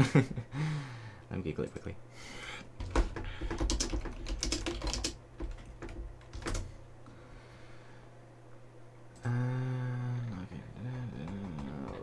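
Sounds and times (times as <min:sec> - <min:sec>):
typing on computer keyboard: 0:02.8 - 0:06.7.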